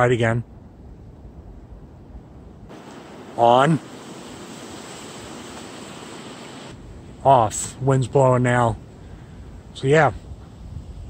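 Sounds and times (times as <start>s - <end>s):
deep wind rumble: 0.0s - 2.7s, 6.7s - 11.0s
wind noise on microphone: 0.0s - 2.8s, 8.7s - 11.0s.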